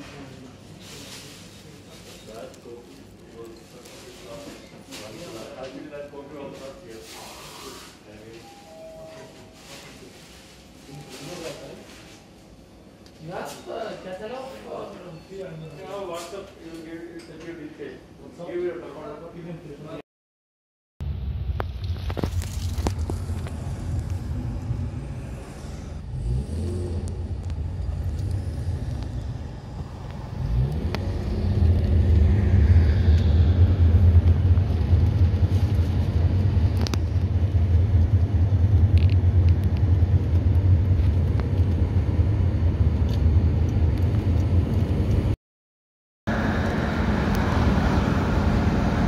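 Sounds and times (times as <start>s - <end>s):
car road and engine rumble: 21.0s - 45.4s, 46.3s - 49.0s.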